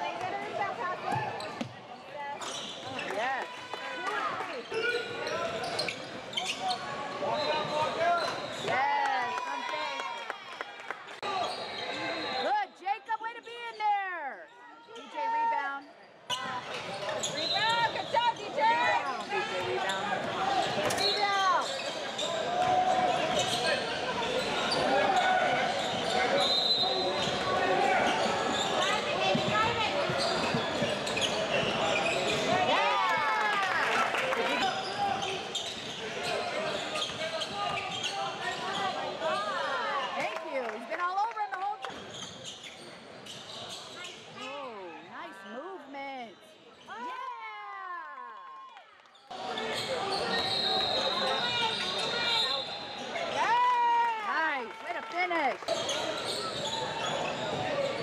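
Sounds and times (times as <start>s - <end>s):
sneakers squeaking on court: 0.9s - 3.2s, 4.6s - 8.8s, 15.8s - 32.7s, 34.7s - 40.3s, 41.8s - 45.0s, 49.1s - 53.4s, 55.7s - 58.0s.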